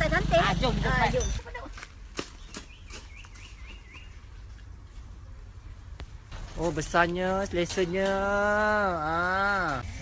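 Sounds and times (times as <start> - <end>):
footsteps on gravel: 1.4 - 5.2
bird chirping: 2.2 - 5.4.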